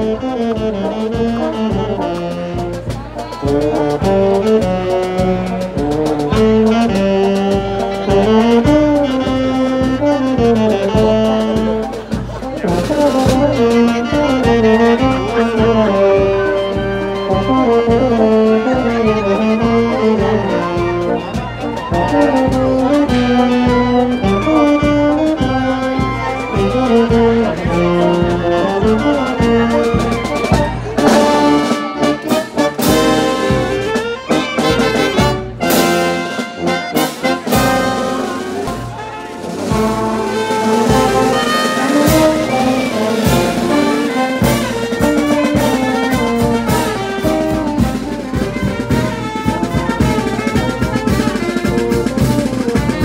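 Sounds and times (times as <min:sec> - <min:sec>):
marching band melody: 0:00.0 - 0:53.0
steady drum beat: 0:00.0 - 0:53.0
percussion strikes: 0:28.8 - 0:53.0.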